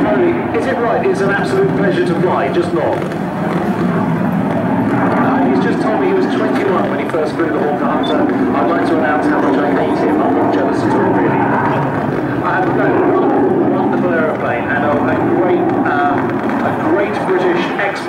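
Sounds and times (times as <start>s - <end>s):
loud jet noise: 0.0s - 18.0s
people's voices: 0.0s - 18.0s.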